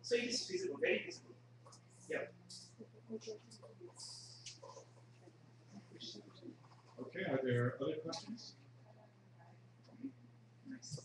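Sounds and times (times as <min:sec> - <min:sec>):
faint indistinct murmurs: 0:00.0 - 0:11.0.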